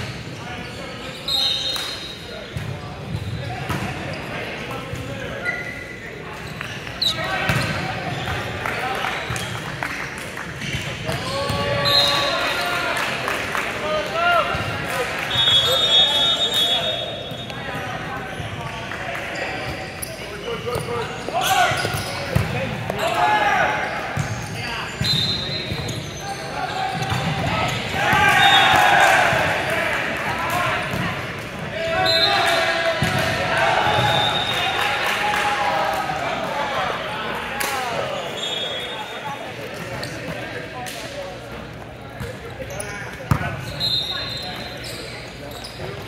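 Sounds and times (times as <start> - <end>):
shoe squeaks: 0.4 - 4.4, 5.3 - 8.4, 19.4 - 22.4, 24.1 - 27.8, 38.1 - 40.4, 42.6 - 46.0
players shouting: 26.7 - 39.2
volleyball thumping on court: 43.2 - 43.6.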